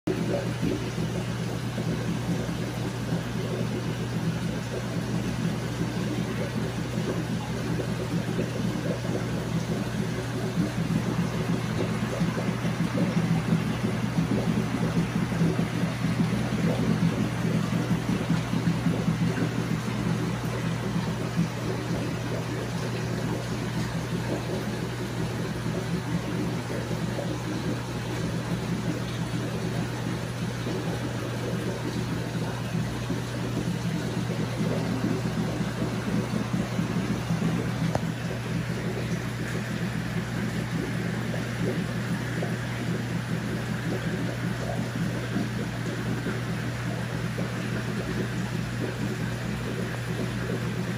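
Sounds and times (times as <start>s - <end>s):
low machine hum: 0.1s - 50.9s.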